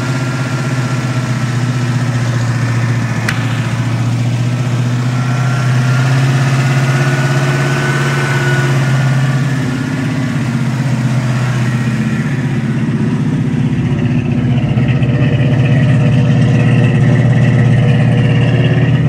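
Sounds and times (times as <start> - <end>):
car engine idling: 0.0 - 19.0.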